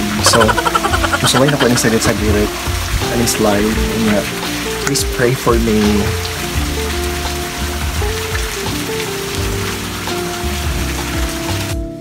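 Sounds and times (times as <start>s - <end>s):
running water hiss: 0.0s - 11.7s
background music: 0.0s - 12.0s.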